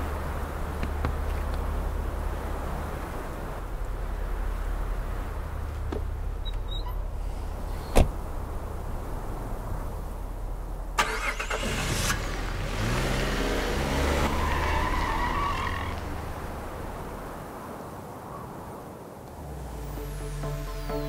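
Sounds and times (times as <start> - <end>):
car engine revving: 11.0 - 17.3
music: 19.6 - 21.0.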